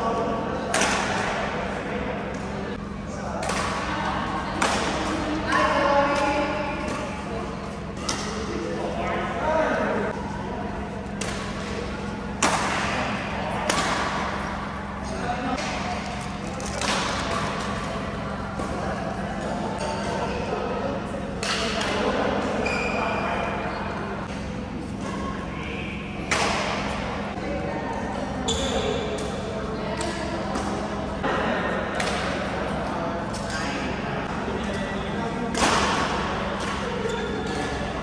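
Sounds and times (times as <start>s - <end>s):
people talking: 0.0s - 38.0s
racket hitting shuttlecock: 4.6s - 7.2s, 11.1s - 14.4s, 26.2s - 27.0s, 35.5s - 37.8s
racket striking shuttlecock: 12.4s - 14.3s.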